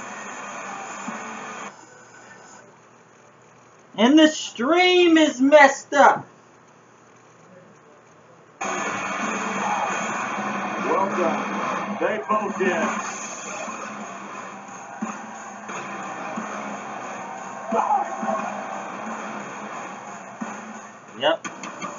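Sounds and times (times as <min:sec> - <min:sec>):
television music with voices: 0:00.0 - 0:21.9.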